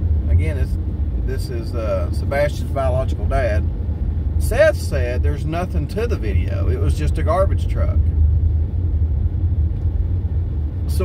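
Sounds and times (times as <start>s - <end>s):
vehicle road and engine rumble: 0.0s - 11.0s.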